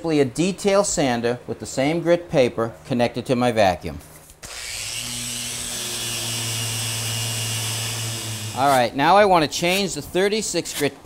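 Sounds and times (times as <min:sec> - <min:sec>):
detail sander sanding wood floor: 0:04.6 - 0:08.9.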